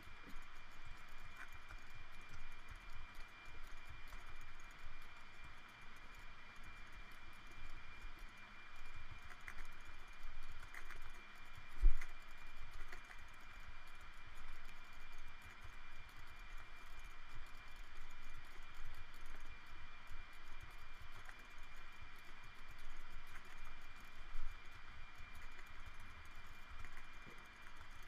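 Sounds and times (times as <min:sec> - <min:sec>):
steady hiss with high whine: 0:00.0 - 0:28.0.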